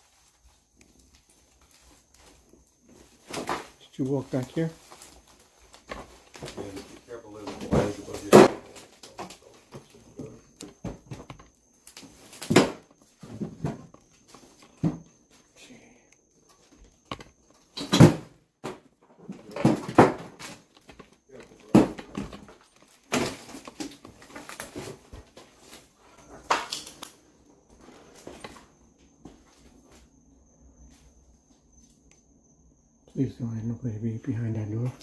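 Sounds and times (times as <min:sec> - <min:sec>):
footsteps crunching over debris: 0:00.0 - 0:15.4, 0:19.3 - 0:30.2.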